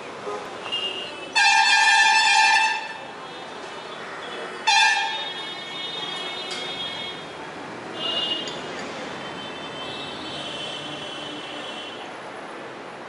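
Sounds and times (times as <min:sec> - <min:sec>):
vehicle horn honking: 0:00.3 - 0:03.0, 0:04.6 - 0:07.2, 0:08.0 - 0:08.6.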